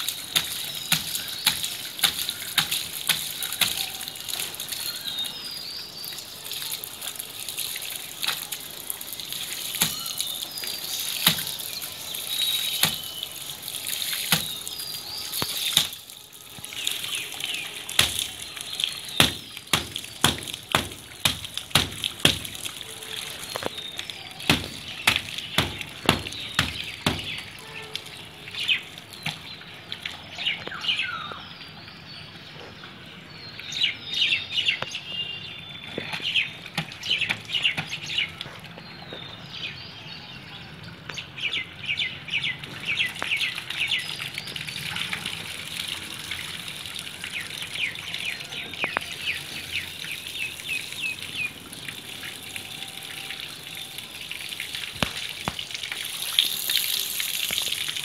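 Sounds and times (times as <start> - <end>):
hose water splashing on filter: 0.0 - 30.9, 34.8 - 39.8, 41.1 - 58.0
birds chirping: 0.0 - 45.4, 47.2 - 54.0.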